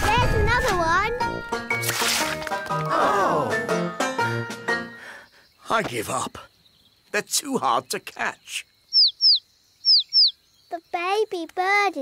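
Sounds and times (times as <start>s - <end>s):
cartoon baby bird chirping: 8.9s - 11.4s.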